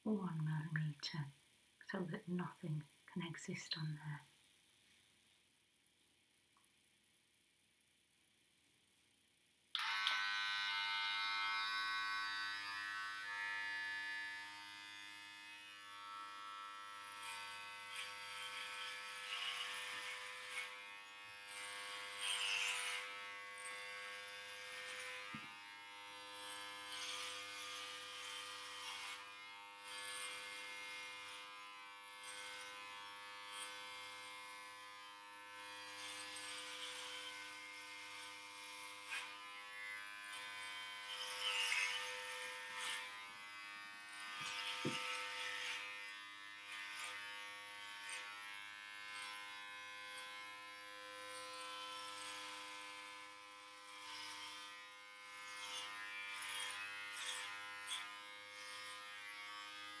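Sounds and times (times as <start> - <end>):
electric hair clippers buzzing: 9.1 - 60.0.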